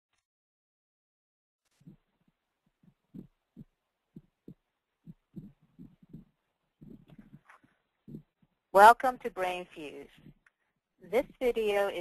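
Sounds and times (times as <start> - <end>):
faint soft low thumps: 1.8 - 8.5.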